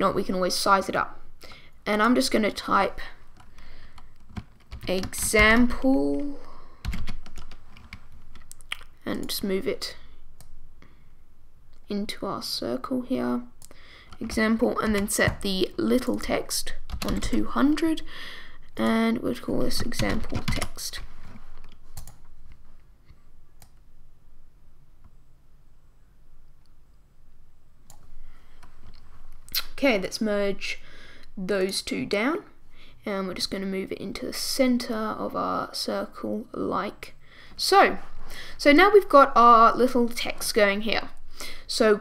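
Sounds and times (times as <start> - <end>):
faint low hum: 0.0 - 42.0
keyboard keys clicking: 3.4 - 8.8.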